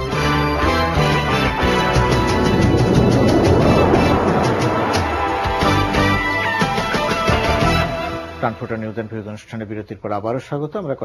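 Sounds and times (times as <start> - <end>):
television theme music: 0.0 - 9.0
noisy whooshing: 1.5 - 6.5.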